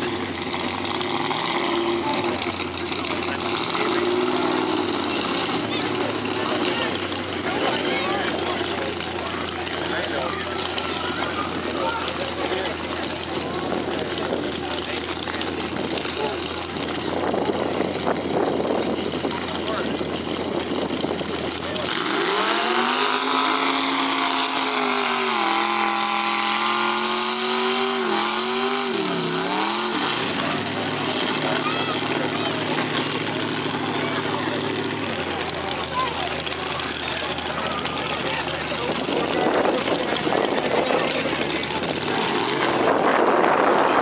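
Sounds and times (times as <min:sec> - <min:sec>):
truck engine idling: 0:00.0 - 0:44.0
truck engine revving: 0:00.0 - 0:44.0.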